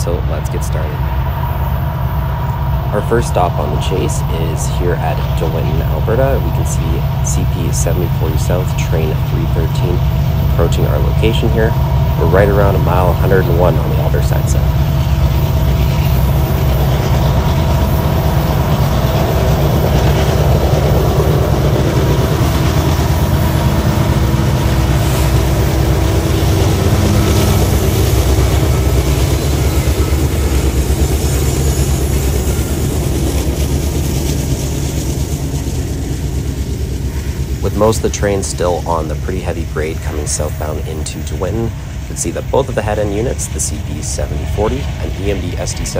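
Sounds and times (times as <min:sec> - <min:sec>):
diesel locomotive engine rumble: 0:00.0 - 0:45.9.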